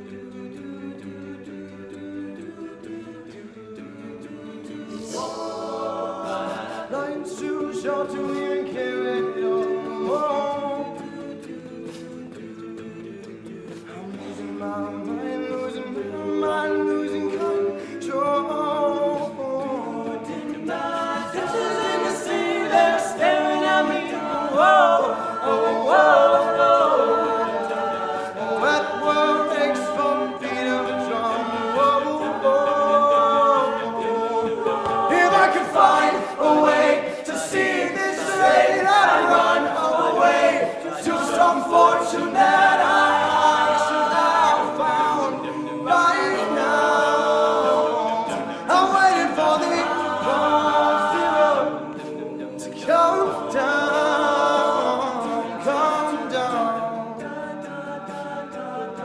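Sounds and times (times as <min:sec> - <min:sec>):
male a cappella group singing: 0:00.0 - 0:59.0.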